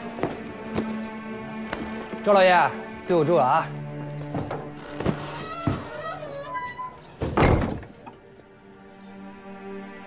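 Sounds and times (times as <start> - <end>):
wooden gate slamming shut: 4.2 - 8.2.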